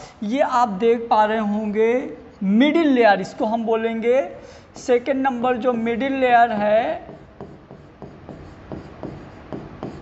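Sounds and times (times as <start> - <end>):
chalk tapping: 6.6 - 10.0
chalk scratching on chalkboard: 6.8 - 10.0.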